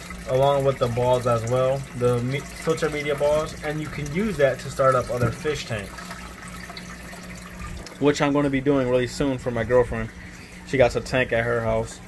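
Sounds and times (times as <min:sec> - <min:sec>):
faint steady hum: 0:00.0 - 0:12.0
water trickling through filter: 0:00.0 - 0:12.0.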